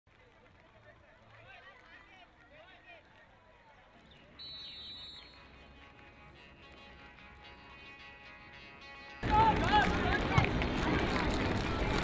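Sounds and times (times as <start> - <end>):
referee's whistle blast: 4.4 - 5.5.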